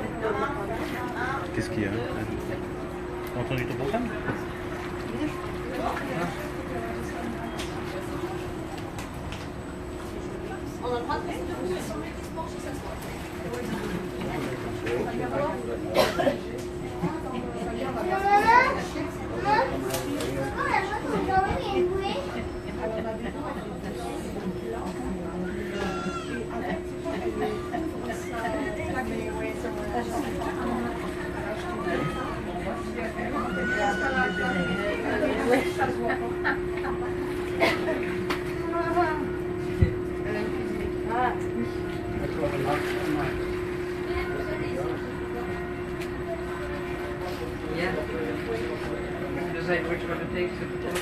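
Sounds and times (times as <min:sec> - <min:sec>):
ferry engine humming: 0:00.0 - 0:51.0
voices chattering: 0:00.0 - 0:51.0
children's voices: 0:17.0 - 0:22.8.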